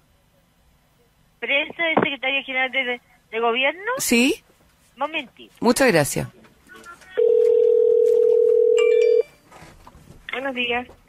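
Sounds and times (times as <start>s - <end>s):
telephone line tone: 7.2s - 9.4s.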